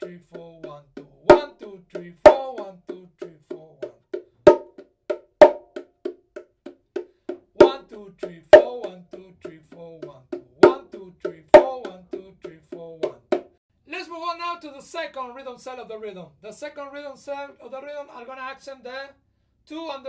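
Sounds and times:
bongos played with hands: 0:00.0 - 0:13.6.

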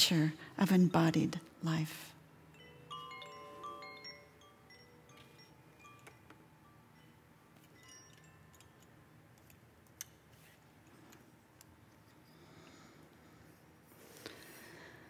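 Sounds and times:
tubular wind chimes ringing: 0:02.4 - 0:09.2.

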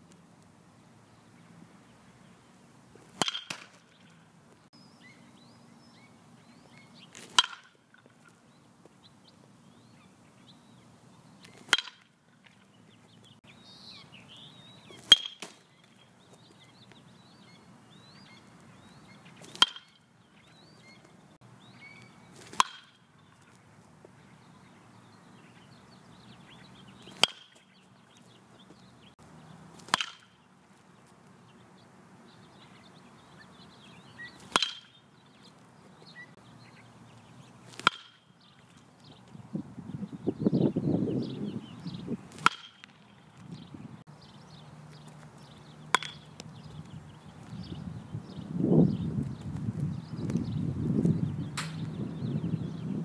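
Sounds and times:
baseball bat hitting ball: 0:03.0 - 0:04.1, 0:07.2 - 0:08.2, 0:11.6 - 0:12.2, 0:14.9 - 0:15.6, 0:19.4 - 0:20.0, 0:22.4 - 0:23.1, 0:27.0 - 0:27.7, 0:29.8 - 0:30.4, 0:34.4 - 0:35.0, 0:37.7 - 0:38.3, 0:42.3 - 0:43.1, 0:45.9 - 0:46.3, 0:51.6 - 0:51.8.

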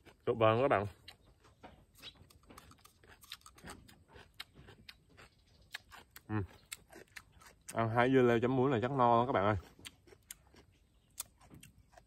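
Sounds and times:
person chewing crunchy food: 0:00.0 - 0:08.1, 0:08.9 - 0:12.0.

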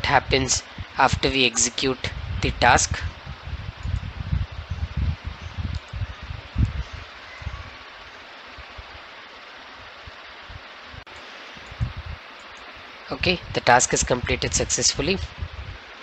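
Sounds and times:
microphone hiss: 0:00.0 - 0:16.0
soft low thumps: 0:11.6 - 0:12.2.

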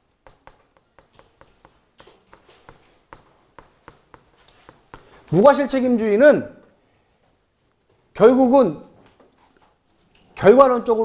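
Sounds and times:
chalk writing on a chalkboard: 0:00.0 - 0:05.3.

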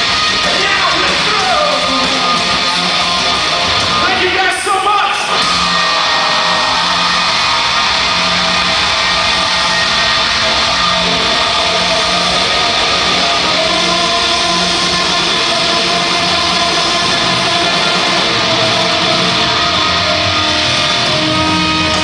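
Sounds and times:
rock band playing live: 0:00.0 - 0:22.0.

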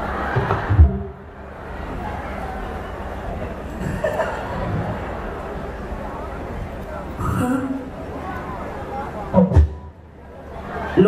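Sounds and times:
murmur of background noise: 0:00.0 - 0:11.0.

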